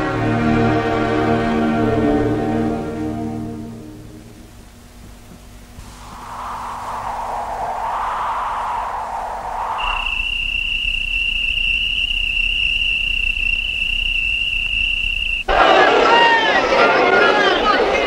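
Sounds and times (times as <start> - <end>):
soft rushing noise: 5.8 - 11.1
faint low rumble: 5.8 - 11.5
high whistle-like tone: 5.8 - 15.5.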